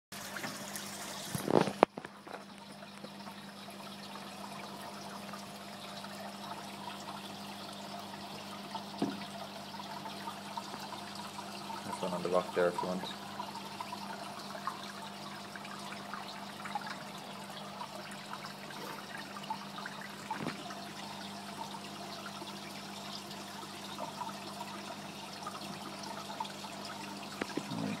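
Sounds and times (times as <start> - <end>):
aquarium water trickling and bubbling: 0.1 - 28.0.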